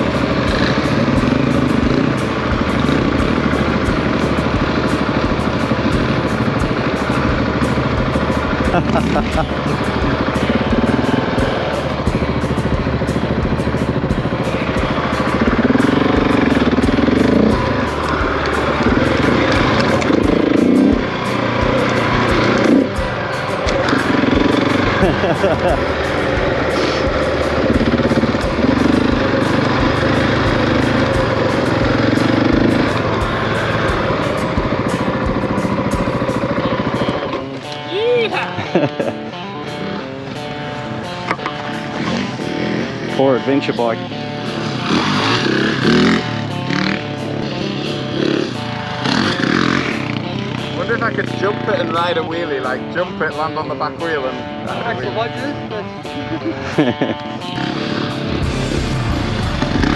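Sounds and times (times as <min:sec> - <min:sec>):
wind and road noise: 0:00.0 - 0:38.4
motorcycle engine running: 0:00.0 - 0:59.9.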